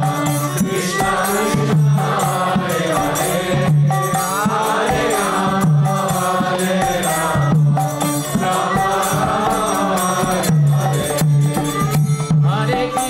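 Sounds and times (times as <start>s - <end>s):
person singing a chant: 0.0s - 11.2s
jingling hand percussion: 0.0s - 13.0s
regular drum beat: 0.0s - 13.0s.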